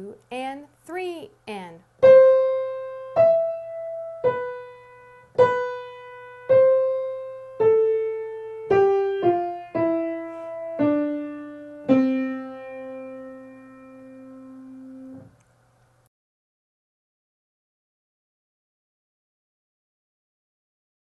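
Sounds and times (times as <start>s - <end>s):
slow piano melody: 2.0s - 15.4s.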